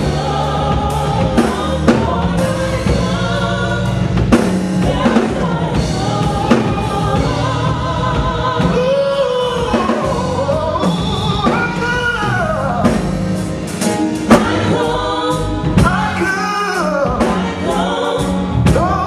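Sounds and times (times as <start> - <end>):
instrumental accompaniment with beat: 0.0 - 19.0
man singing gospel: 7.3 - 13.1, 15.8 - 17.8, 18.7 - 19.0.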